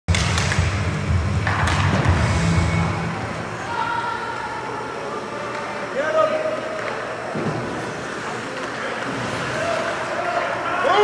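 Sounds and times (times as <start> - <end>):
hockey sticks and puck clacking: 0.1 - 2.5, 6.7 - 9.1
low arena rumble: 0.1 - 4.3.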